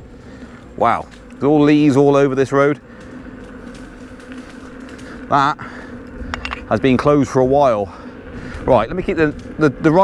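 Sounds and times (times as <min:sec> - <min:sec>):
electric motor and tyre hum: 0:00.0 - 0:10.0.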